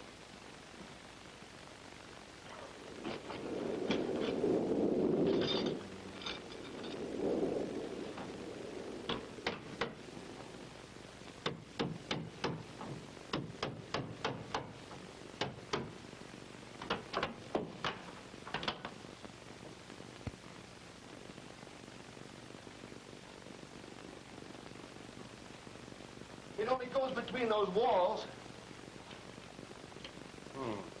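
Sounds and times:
wood scraping and tumbling: 0:03.0 - 0:10.7.

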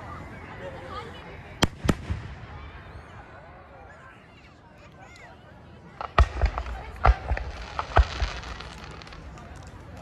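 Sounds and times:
faint voices: 0:00.0 - 0:10.0
fireworks bangs: 0:01.6 - 0:02.8, 0:05.9 - 0:10.0
fireworks pops and crackles: 0:05.9 - 0:10.0.

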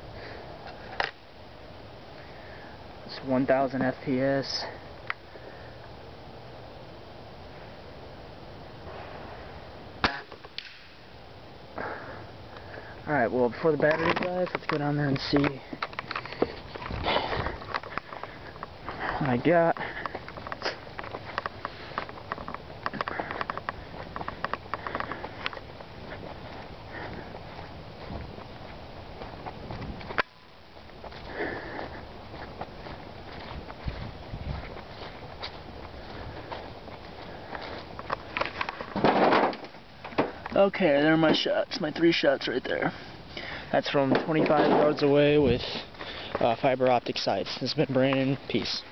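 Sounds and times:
air rifle shot crack: 0:10.0 - 0:11.0
footsteps through dry leaves: 0:25.2 - 0:38.4.

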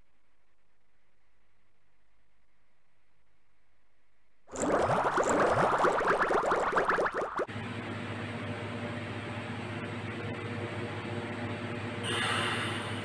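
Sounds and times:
dense crackling noise: 0:04.5 - 0:07.5
light-rail train humming: 0:08.0 - 0:13.0.

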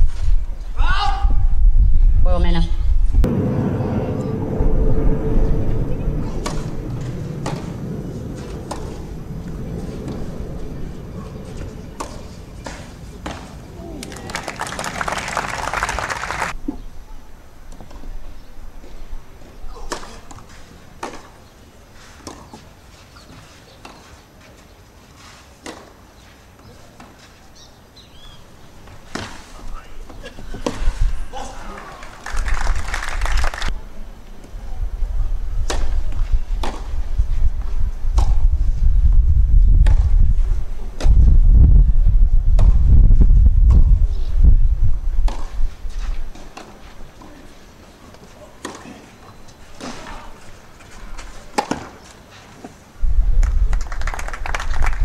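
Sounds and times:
tennis ball struck by rackets: 0:36.6 - 0:36.9, 0:45.3 - 0:45.6.

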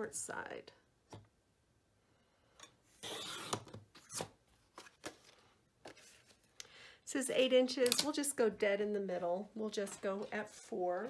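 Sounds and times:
paper rustling: 0:04.6 - 0:06.6.

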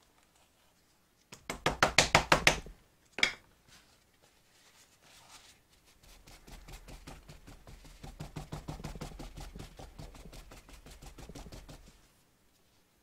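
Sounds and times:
paper towel dabbing on paper: 0:03.8 - 0:12.2.

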